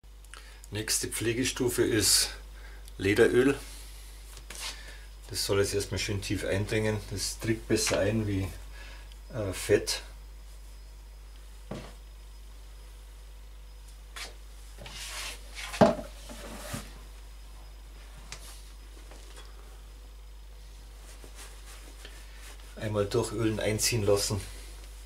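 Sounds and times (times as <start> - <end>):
cloth rubbing on leather: 20.7 - 22.8.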